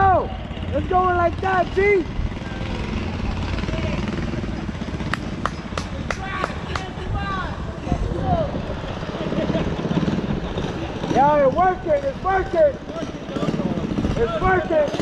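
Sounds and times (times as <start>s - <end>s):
engine droning: 0.0s - 15.0s.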